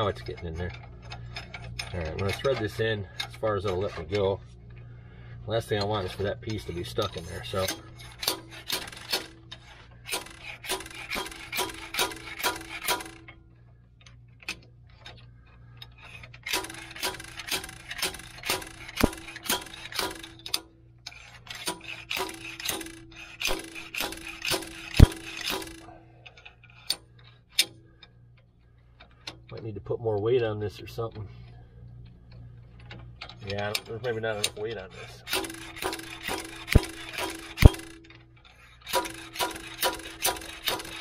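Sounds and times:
ringing metal clanks: 0:33.7 - 0:41.0.

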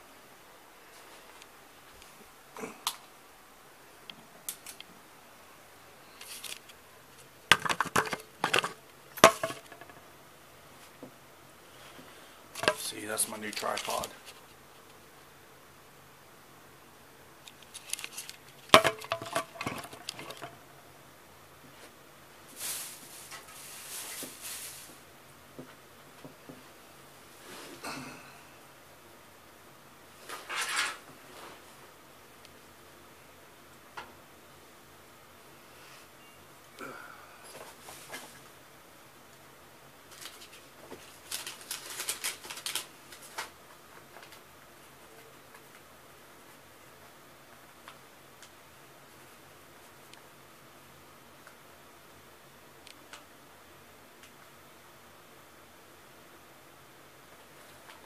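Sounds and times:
handling clicks and crackles: 0:12.6 - 0:15.0, 0:17.4 - 0:20.6
soft rustling: 0:21.7 - 0:25.1.

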